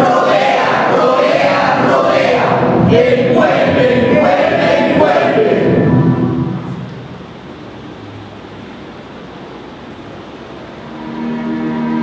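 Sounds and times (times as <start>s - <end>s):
voices chanting in unison: 0.0s - 6.6s.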